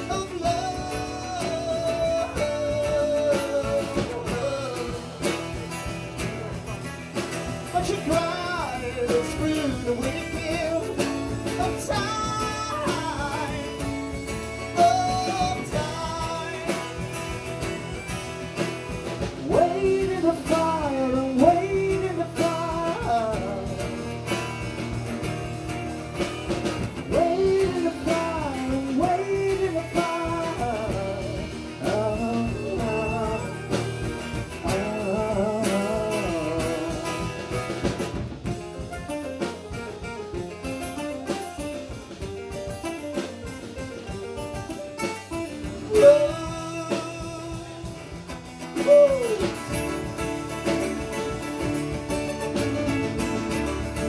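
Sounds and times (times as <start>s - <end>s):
drums: 0.0s - 54.0s
sliding melody line: 0.0s - 54.0s
strummed acoustic guitars: 0.0s - 54.0s
person shouting woo: 48.8s - 49.6s.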